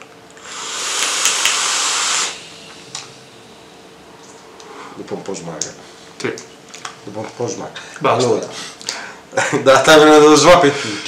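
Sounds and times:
air hissing through vaporizer: 0:00.4 - 0:05.0.

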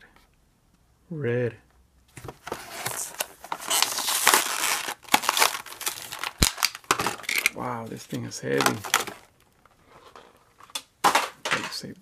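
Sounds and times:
toy truck handling noise: 0:02.2 - 0:07.6, 0:08.5 - 0:09.3.

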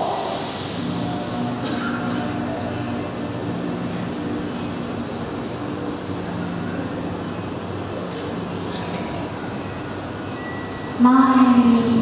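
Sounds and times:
large hall full of people: 0:00.0 - 0:12.0.

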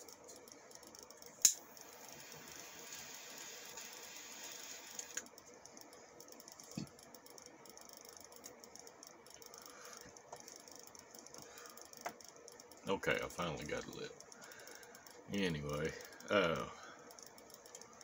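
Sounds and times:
torch lighter hissing: 0:01.4 - 0:05.2.

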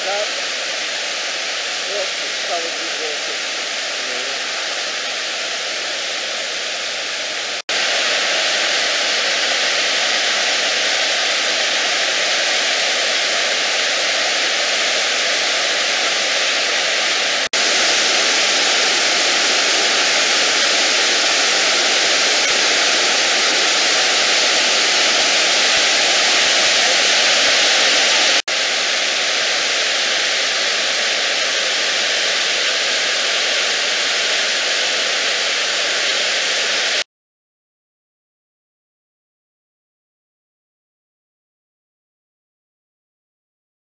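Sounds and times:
waterfall and river rapids rushing: 0:00.0 - 0:37.0.

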